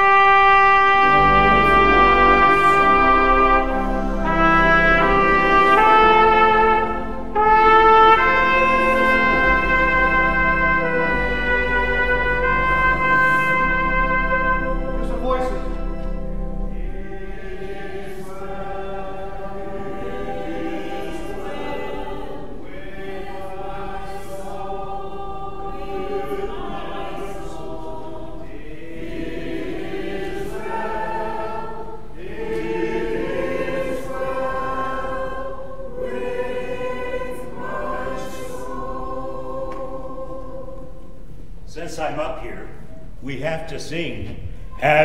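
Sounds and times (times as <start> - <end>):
voices singing sustained chords: 0.0 - 43.2.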